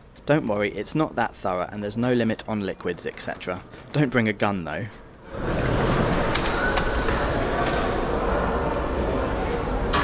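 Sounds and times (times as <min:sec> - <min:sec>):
din of busy hall: 0:00.0 - 0:10.0.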